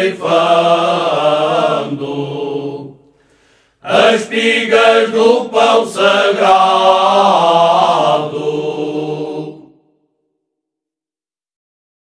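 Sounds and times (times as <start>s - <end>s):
folk choir singing a cappella: 0.0s - 3.1s, 3.8s - 9.9s.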